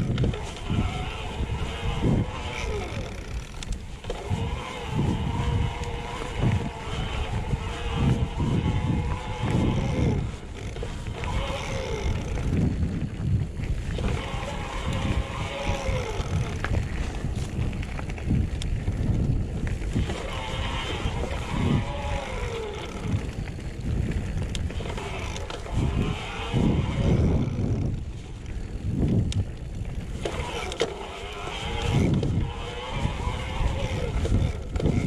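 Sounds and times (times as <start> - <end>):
freehub ratchet buzzing: 0.0 - 12.8
wind on microphone: 0.0 - 35.0.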